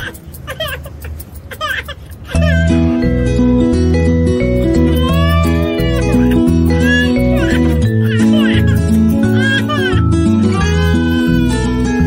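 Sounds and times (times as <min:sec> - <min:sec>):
infant crying: 0:01.5 - 0:02.8, 0:04.5 - 0:12.0
background music sustained notes: 0:02.4 - 0:12.0.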